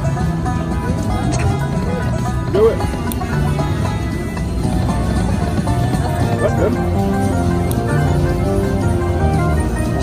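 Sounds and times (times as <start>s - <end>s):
electronic slot machine music: 0.0s - 10.0s.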